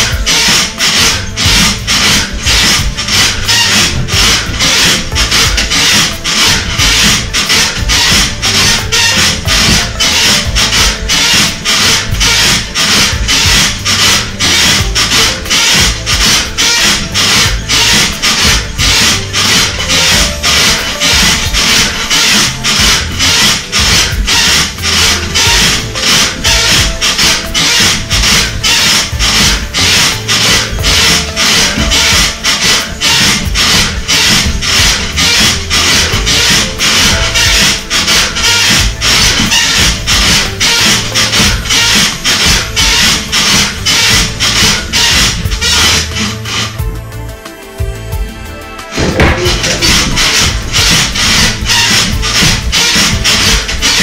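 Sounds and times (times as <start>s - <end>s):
music playing: 0.0s - 54.0s
rhythmic rasping of trampoline: 0.0s - 54.0s.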